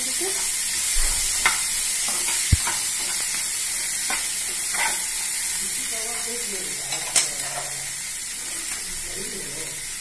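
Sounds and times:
vegetables sizzling in pan: 0:00.0 - 0:10.0.

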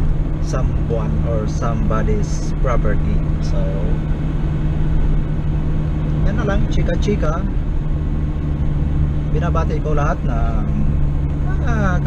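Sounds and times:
car engine and road noise: 0:00.0 - 0:12.0
low hum: 0:00.0 - 0:12.0.

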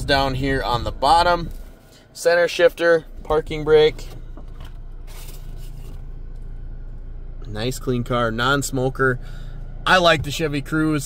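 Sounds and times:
car engine idling hum: 0:00.0 - 0:11.0.

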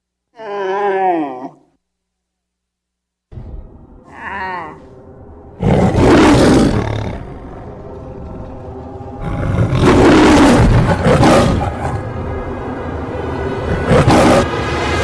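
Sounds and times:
low music bed: 0:03.3 - 0:15.0
dinosaur roars: 0:05.6 - 0:07.8, 0:09.2 - 0:12.1, 0:13.7 - 0:14.6.

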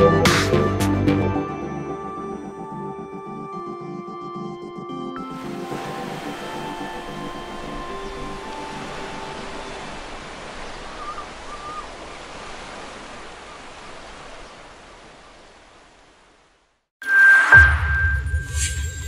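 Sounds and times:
song held notes: 0:01.7 - 0:10.0
sea surf rushing: 0:05.2 - 0:16.0.

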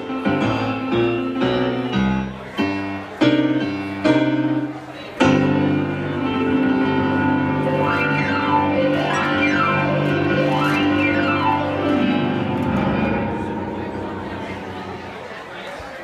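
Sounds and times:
electric piano chord and glissandos: 0:00.0 - 0:16.0.

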